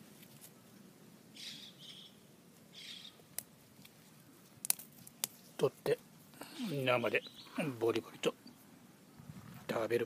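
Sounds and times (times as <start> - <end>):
bird calling short and high: 1.4 - 3.2
asparagus spear snapping: 3.3 - 5.4.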